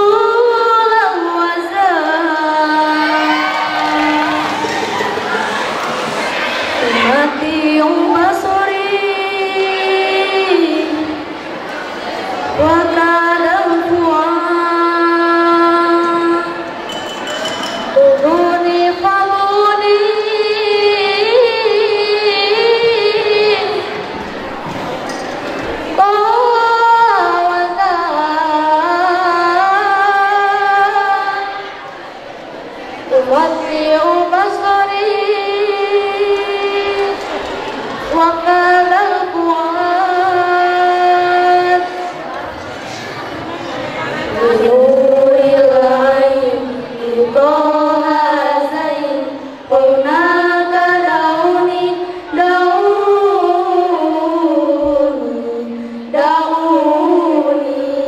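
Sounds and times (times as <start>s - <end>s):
girl singing long note: 0.0s - 4.8s, 6.8s - 11.2s
girl singing a long held note: 0.0s - 5.0s, 6.6s - 11.3s, 25.9s - 31.9s, 44.3s - 58.0s.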